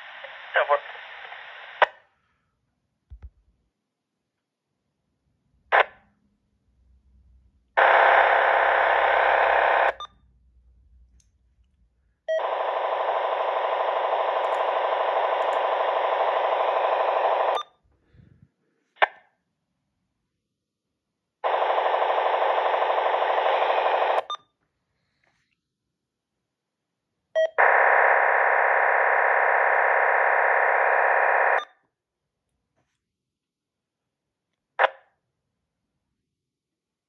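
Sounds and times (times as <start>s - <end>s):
harsh radio buzzing: 7.8s - 10.0s, 12.4s - 17.6s, 21.5s - 24.3s.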